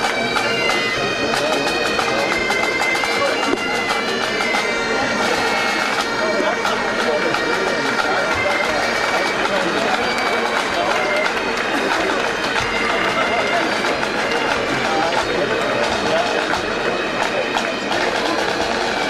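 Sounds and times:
crowd voices: 0.0 - 19.0
pipe band playing bagpipes: 0.0 - 19.0.

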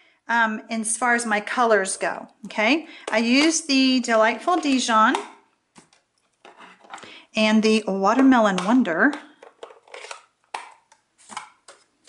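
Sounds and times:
plastic cases clicking on desk: 8.5 - 11.9.

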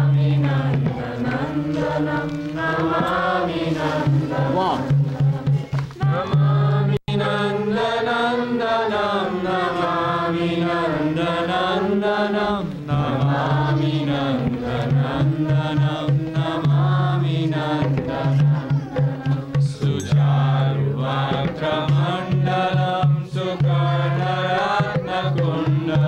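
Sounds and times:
devotional chanting: 0.0 - 26.0.

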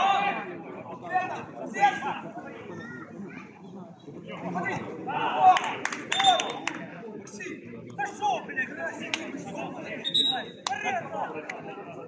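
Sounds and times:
people shouting: 5.1 - 6.3.

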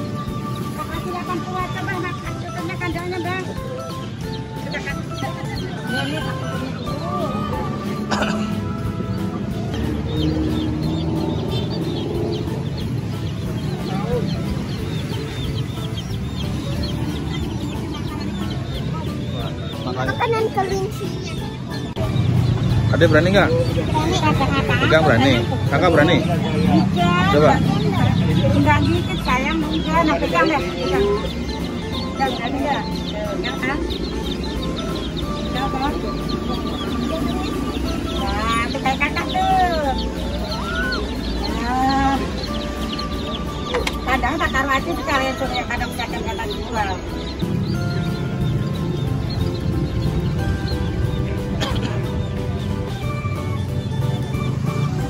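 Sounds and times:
chickens clucking: 0.0 - 55.0
high peeping chirps: 0.0 - 55.0.

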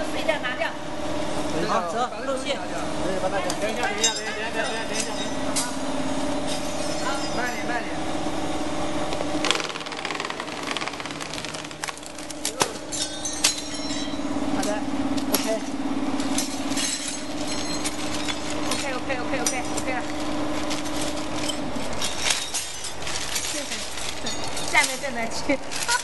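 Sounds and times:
electric motor hum: 7.8 - 12.5.

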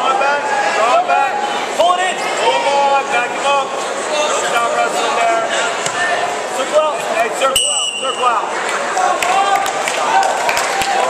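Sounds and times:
crowd shouting and talking: 0.0 - 11.0
referee's whistle blast: 7.6 - 8.3.

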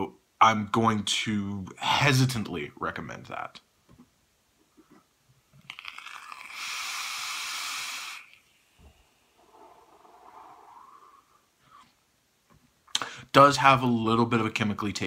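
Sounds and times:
e-cigarette crackling: 5.6 - 8.8
hiss of air drawn through atomizer: 6.0 - 11.4
person breathing out: 6.1 - 8.5.

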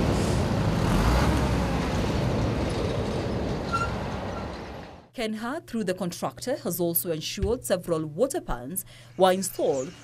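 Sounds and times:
heavy vehicle engine rumble: 0.0 - 5.1.

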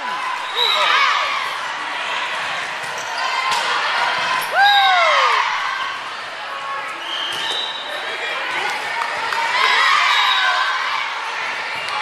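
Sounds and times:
sneakers squeaking on gym court: 2.8 - 3.6, 6.9 - 8.1.

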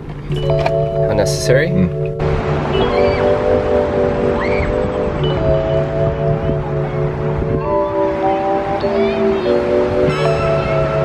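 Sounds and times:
music of sustained chords: 0.0 - 11.0
steady rushing noise: 0.0 - 11.0.

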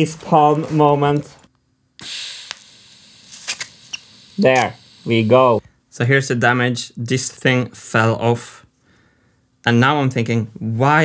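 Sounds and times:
welding torch hiss: 2.0 - 5.6.

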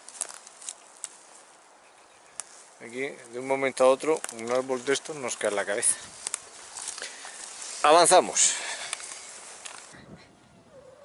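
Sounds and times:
faint rustling steps: 2.2 - 10.0
faint animal call: 10.2 - 11.0.

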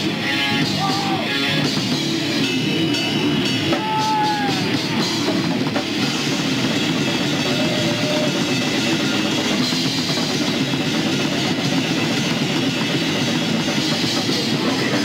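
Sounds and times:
death metal band playing: 0.0 - 15.0
distorted guitar: 0.0 - 15.0
rapid drumming: 0.0 - 15.0.

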